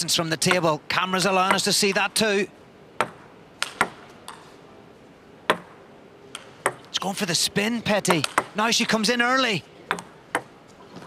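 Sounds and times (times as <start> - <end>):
ball clicking off bats: 1.4 - 2.2, 3.0 - 4.5, 5.4 - 6.9, 8.0 - 8.6, 9.8 - 11.0
ball bouncing on table: 3.0 - 4.4, 5.5 - 6.9, 9.9 - 10.5.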